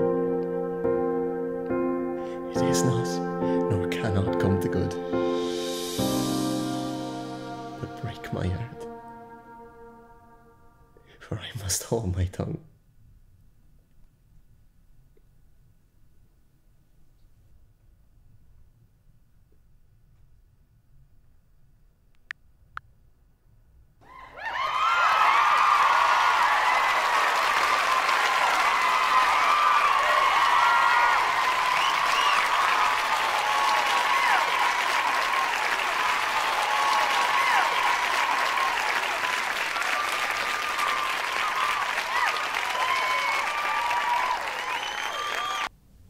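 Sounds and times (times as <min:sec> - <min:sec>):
people cheering: 0:24.0 - 0:45.7
audience applauding: 0:24.3 - 0:45.7.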